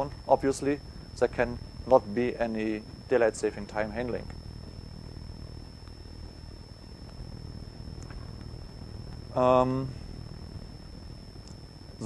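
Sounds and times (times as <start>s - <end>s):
high-pitched whine: 0.0s - 12.0s
low room hum: 0.0s - 12.0s.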